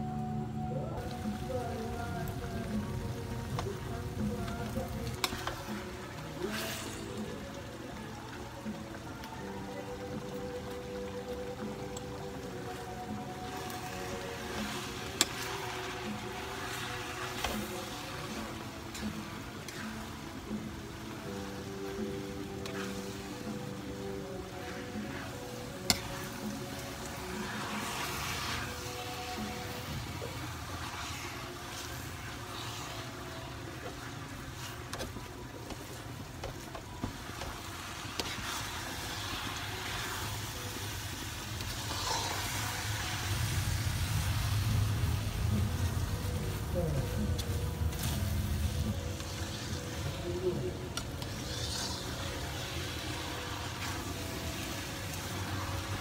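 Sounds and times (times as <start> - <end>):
background music: 0.0 - 56.0.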